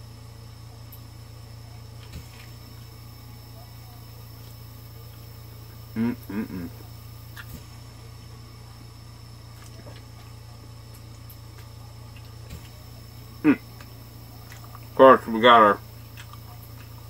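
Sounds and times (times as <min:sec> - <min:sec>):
steady low hum: 0:00.0 - 0:17.0
quiet chewing: 0:01.9 - 0:15.0, 0:15.8 - 0:17.0
appreciative mm sound: 0:05.9 - 0:07.6, 0:12.1 - 0:16.4.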